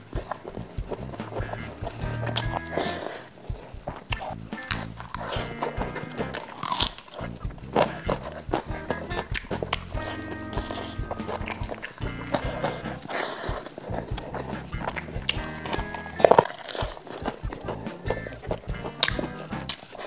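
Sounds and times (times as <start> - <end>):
background music with held tones: 0.0 - 20.0
close-miked eating clicks and smacks: 0.0 - 20.0.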